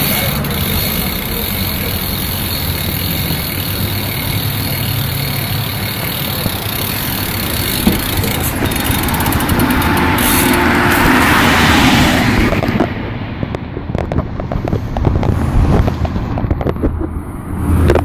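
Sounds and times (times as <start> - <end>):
bike tyres rolling on pavement: 0.0 - 18.0.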